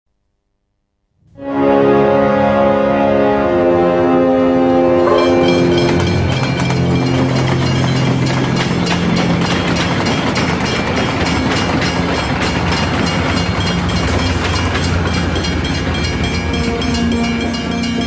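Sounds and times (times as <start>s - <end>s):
music: 1.2s - 18.0s
train passing: 1.4s - 18.0s
wheels clattering over rails: 5.4s - 18.0s.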